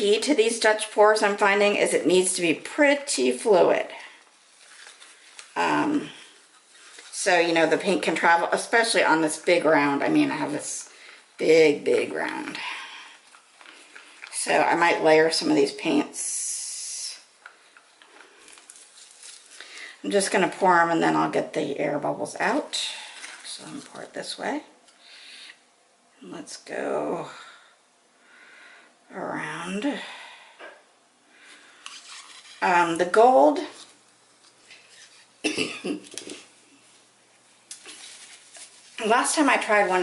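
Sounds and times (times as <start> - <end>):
person coughing: 35.4 - 36.1.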